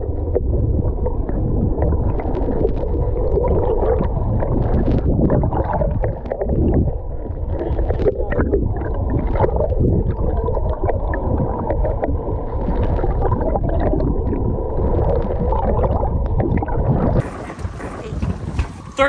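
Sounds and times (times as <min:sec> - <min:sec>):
crackles: 0:00.0 - 0:19.0
faint steady hum: 0:00.0 - 0:19.0
underwater churning and bubbling: 0:00.0 - 0:19.0
wind on microphone: 0:00.0 - 0:19.0.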